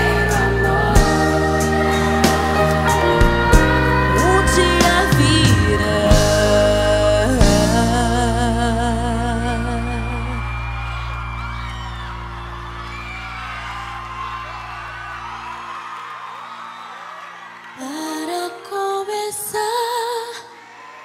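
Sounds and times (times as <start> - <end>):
audience cheering and whooping: 0.0 - 6.2, 9.4 - 18.9, 20.3 - 21.0
band chord ringing: 0.0 - 8.8
woman singing with vibrato: 0.0 - 10.6, 17.8 - 20.6.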